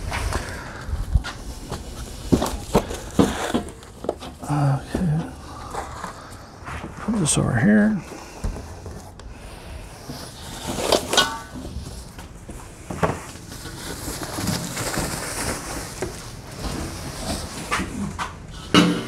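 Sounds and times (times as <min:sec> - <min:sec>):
plastic wrap rustling: 0:00.0 - 0:07.0, 0:10.0 - 0:18.5
loud clunk: 0:18.7 - 0:19.0.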